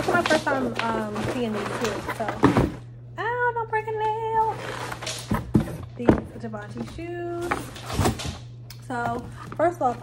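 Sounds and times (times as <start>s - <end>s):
cardboard rustle: 0.0s - 2.8s.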